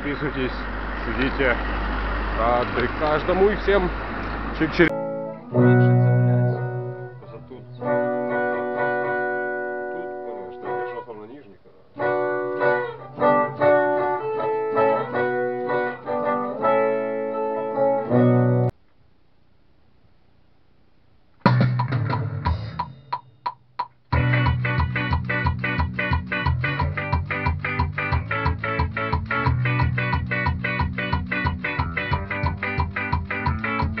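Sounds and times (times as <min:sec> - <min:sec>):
electric guitar chords: 0:00.7 - 0:18.7, 0:24.1 - 0:34.0.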